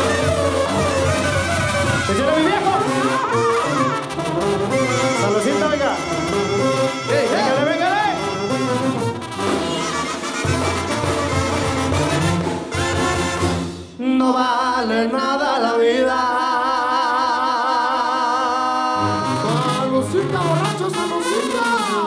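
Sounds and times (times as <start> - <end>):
brass band playing: 0.0 - 14.0, 19.0 - 22.0.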